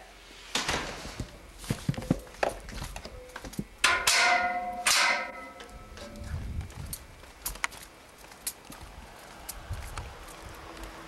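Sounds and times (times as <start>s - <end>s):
sharp ringing strikes: 3.8s - 5.9s.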